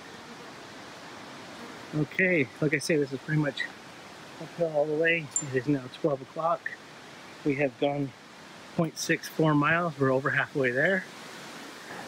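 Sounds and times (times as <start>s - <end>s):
wind rustling leaves: 0.0s - 12.0s.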